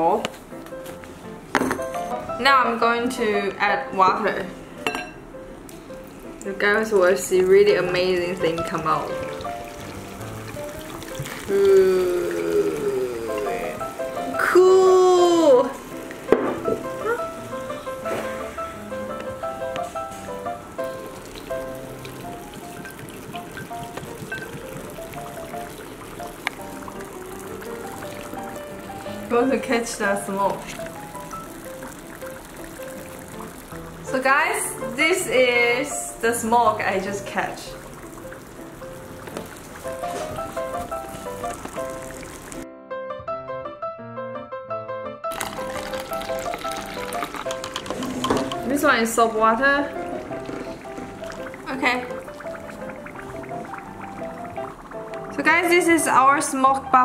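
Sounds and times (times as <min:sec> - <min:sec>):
background music with simple melody: 0:00.0 - 0:57.0
dry ice bubbling in water: 0:06.6 - 0:15.8, 0:20.4 - 0:42.6, 0:45.3 - 0:56.8.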